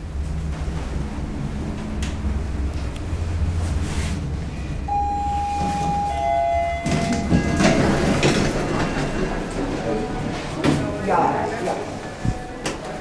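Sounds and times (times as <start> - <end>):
elevator running hum: 0.0 - 13.0
sliding elevator doors opening: 0.0 - 13.0
two-note arrival chime: 4.9 - 7.8.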